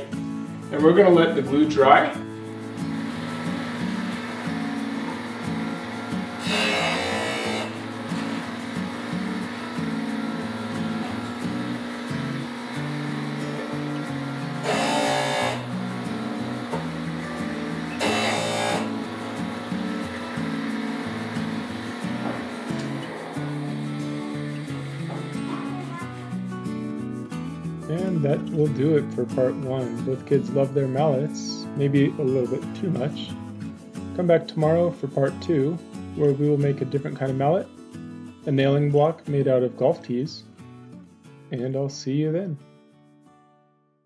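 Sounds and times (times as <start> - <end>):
background music: 0.0 - 43.6
disc sander rasping wood: 2.8 - 26.0.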